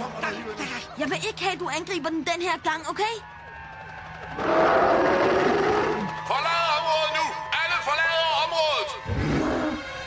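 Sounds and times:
cartoon dinosaur roar: 4.4 - 6.1, 9.1 - 9.8.

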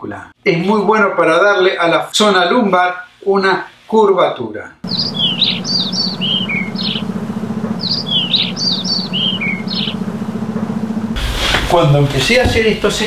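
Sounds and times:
cartoon bird chirps: 4.8 - 7.1, 7.8 - 10.0
steady low hum: 4.8 - 13.0.

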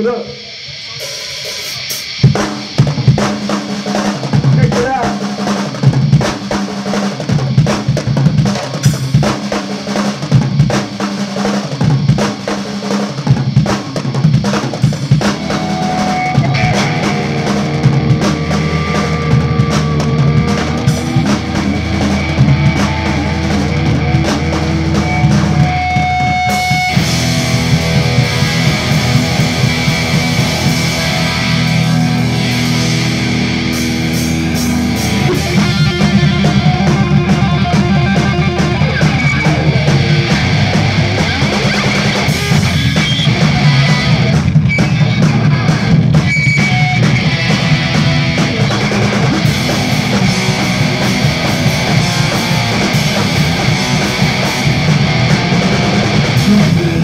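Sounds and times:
drum kit: 0.0 - 57.0
electric guitar and bass notes: 0.0 - 57.0
live rock band playing loud: 0.0 - 57.0.

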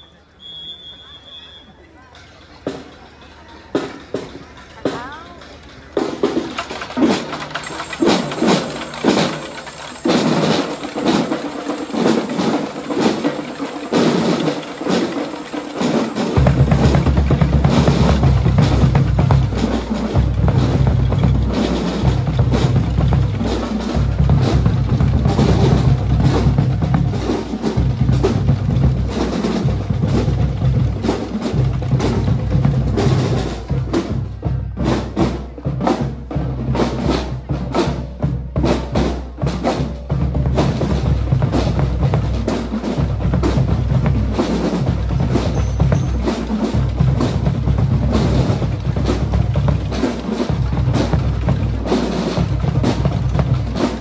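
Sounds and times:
drum and lyre corps: 1.6 - 54.0
snare drums fast beat: 5.9 - 54.0.

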